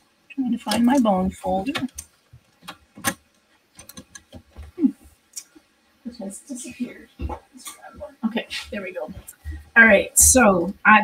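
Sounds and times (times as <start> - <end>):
craft tools clicking and tapping: 0.7 - 4.7.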